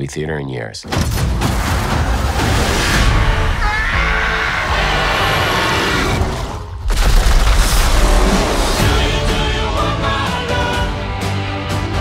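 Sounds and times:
film music: 0.9s - 12.0s.

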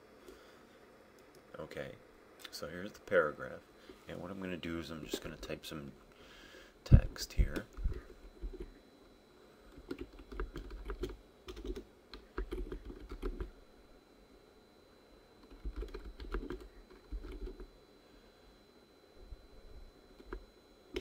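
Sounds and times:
computer keyboard typing: 7.5s - 8.7s, 9.7s - 13.5s, 15.4s - 17.7s, 20.2s - 21.0s.

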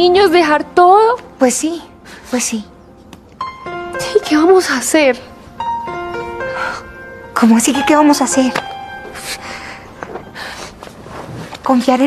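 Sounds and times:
woman gasping and sniffling: 9.2s - 10.9s.

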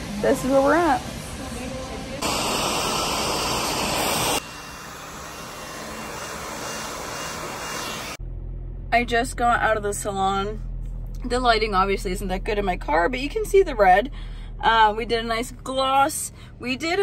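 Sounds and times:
hair dryer blowing: 2.2s - 8.2s
low steady hum: 8.2s - 17.0s.

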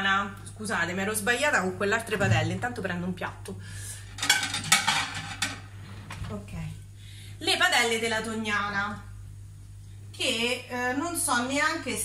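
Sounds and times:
plates clinking: 4.2s - 5.7s.

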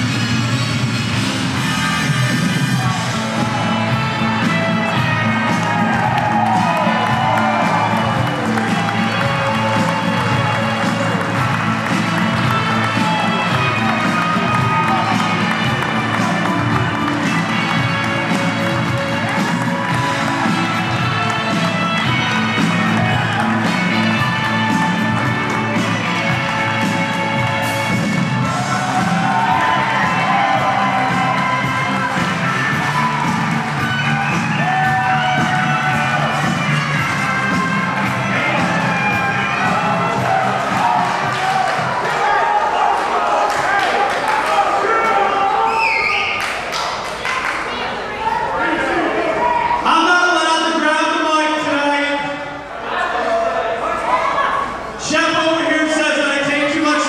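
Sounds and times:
entrance music with steady beat: 0.0s - 42.1s
crowd cheering: 1.0s - 57.0s.

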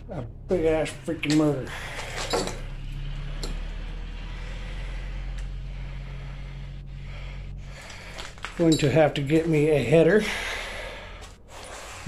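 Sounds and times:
small engine running steadily: 0.0s - 8.2s.

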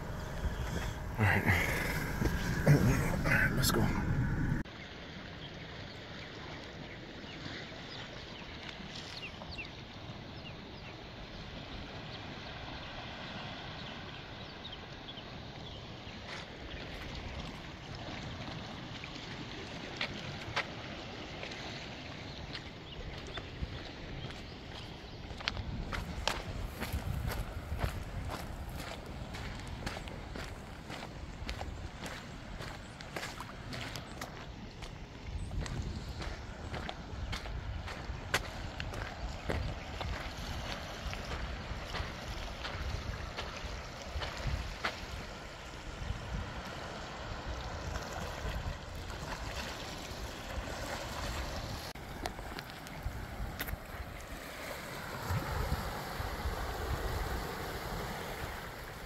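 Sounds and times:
outdoor noise: 0.0s - 7.6s
wind rumble on microphone: 23.1s - 59.0s
footsteps on coarse sand and shells: 24.3s - 45.1s.

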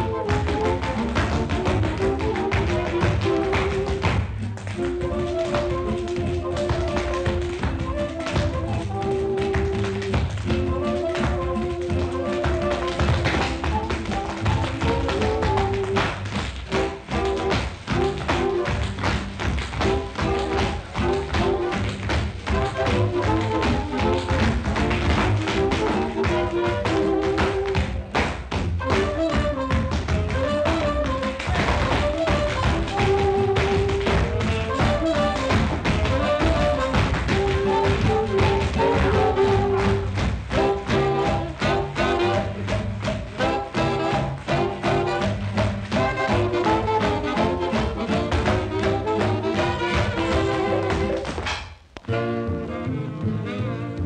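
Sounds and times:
tap dancing on hard floor: 0.0s - 52.1s
jazz orchestra horns: 16.7s - 18.9s, 22.5s - 27.3s, 28.8s - 51.2s, 52.1s - 54.0s.

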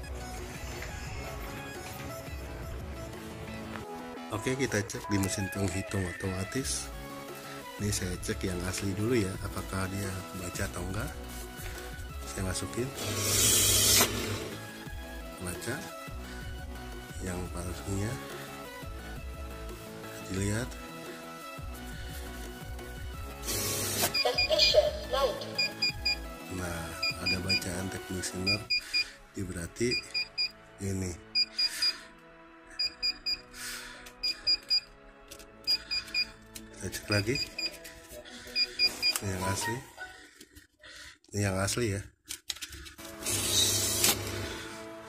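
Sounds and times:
banknote counter hissing whir: 13.0s - 14.6s, 23.4s - 24.2s, 43.2s - 44.7s.

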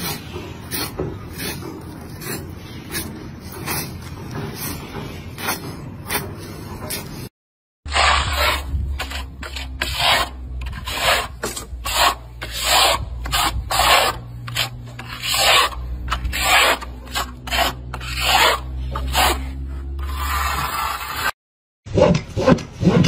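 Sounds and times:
trowel scraping cement on wall: 0.0s - 7.3s, 7.9s - 21.4s.

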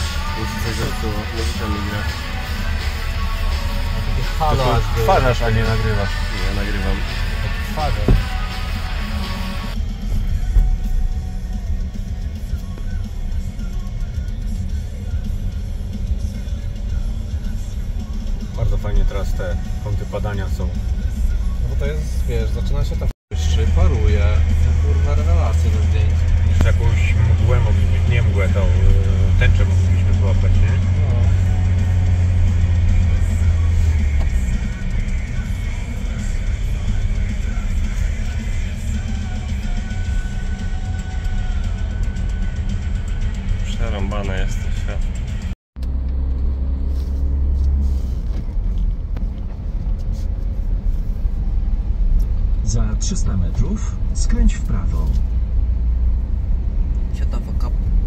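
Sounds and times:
music: 0.0s - 45.6s
voices: 0.0s - 45.6s, 57.1s - 58.0s
car road and engine rumble: 0.0s - 58.0s.

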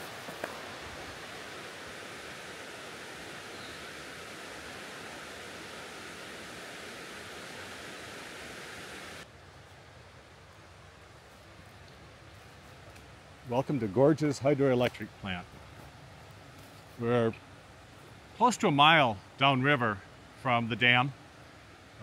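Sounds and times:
river rapids rushing: 0.0s - 9.2s.

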